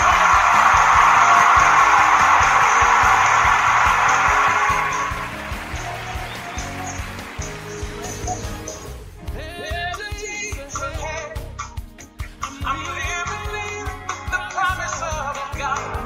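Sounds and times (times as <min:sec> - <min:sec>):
theme music with pulsing bass: 0:00.0 - 0:09.9.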